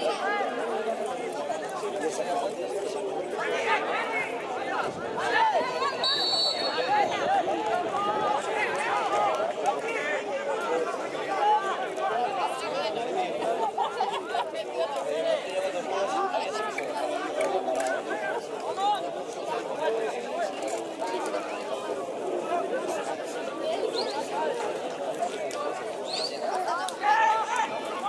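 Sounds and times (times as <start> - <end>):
indistinct chatter: 0.0 - 28.0.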